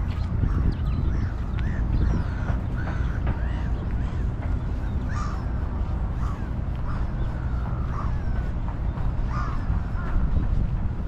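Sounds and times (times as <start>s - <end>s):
bird calls: 0.0s - 11.0s
steady low rumble: 0.0s - 11.0s.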